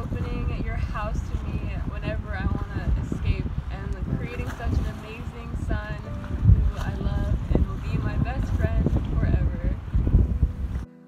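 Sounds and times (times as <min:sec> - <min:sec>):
woman talking: 0:00.0 - 0:09.8
wind buffeting microphone: 0:00.0 - 0:11.0.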